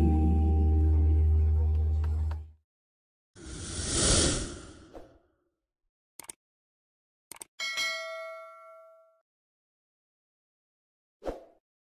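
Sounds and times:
notification bell ding: 7.6 - 9.2.

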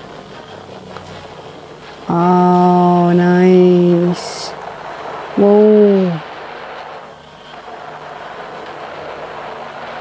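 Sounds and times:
aircraft engine rushing: 0.0 - 10.0.

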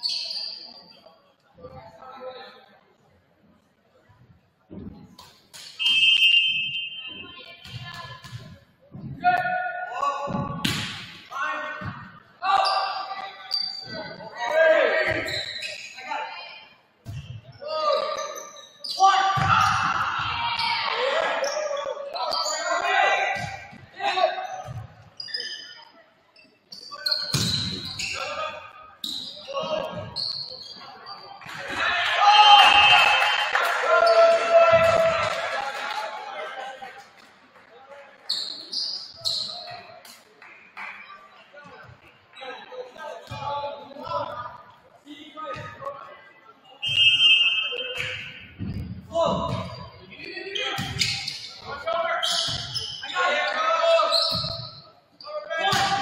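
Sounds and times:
referee's whistle blast: 5.7 - 7.3, 46.8 - 48.5
people shouting and cheering: 19.0 - 24.5, 31.5 - 37.0, 55.3 - 56.0.

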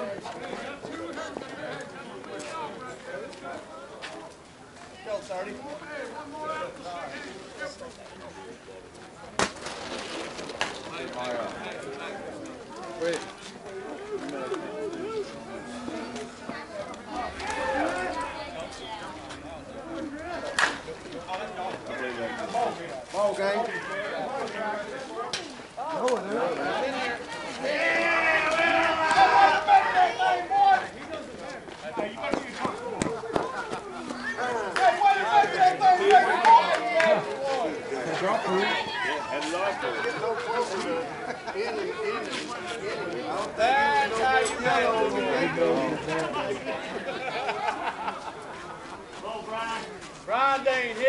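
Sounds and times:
people calling and shouting outdoors: 0.0 - 51.0
people chattering: 0.0 - 51.0.

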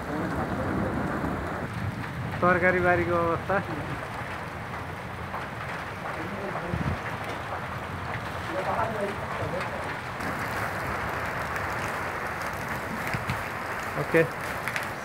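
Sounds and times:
hail pattering on ground: 0.0 - 15.0.

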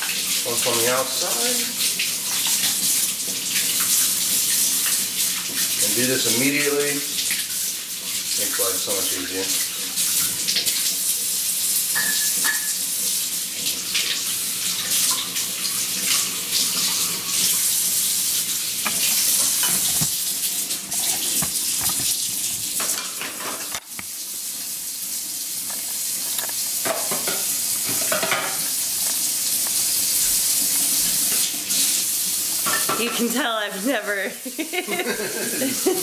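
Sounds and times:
faucet running into metal sink: 0.0 - 24.8, 25.5 - 33.6
parts scrubbed under water: 18.8 - 20.2, 20.8 - 22.9
parts knocking against sink: 21.0 - 22.1.

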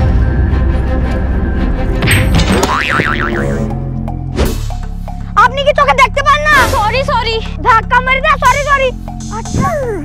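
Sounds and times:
background music: 0.0 - 10.0
comic wobbling boing: 2.6 - 3.6.

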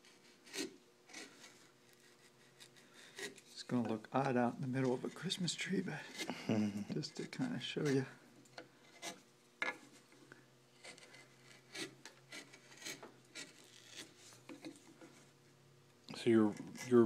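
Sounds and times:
hand gouge scraping wood: 0.0 - 4.0, 10.8 - 15.3.

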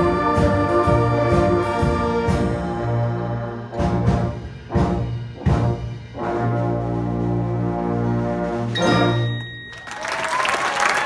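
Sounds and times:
audience applause: 9.7 - 11.0.

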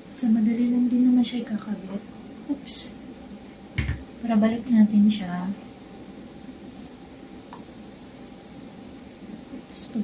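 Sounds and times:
woman speaking: 0.2 - 3.0, 4.2 - 5.6, 9.3 - 10.0.

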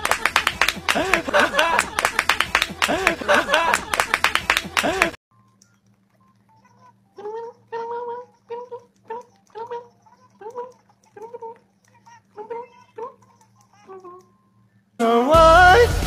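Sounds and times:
low electrical hum: 0.0 - 15.2.

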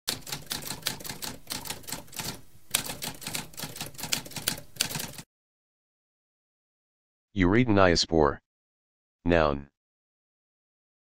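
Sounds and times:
typewriter keys clattering: 0.1 - 5.2.

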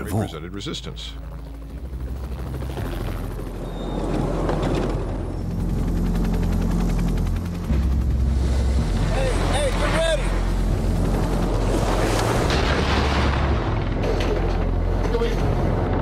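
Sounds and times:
helicopter rotor noise: 0.0 - 12.5
deep steady drone: 0.0 - 16.0.

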